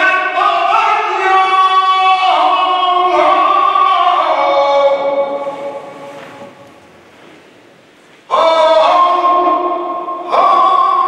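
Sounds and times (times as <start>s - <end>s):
solo voice singing with echo: 0.0s - 6.7s, 8.2s - 11.0s.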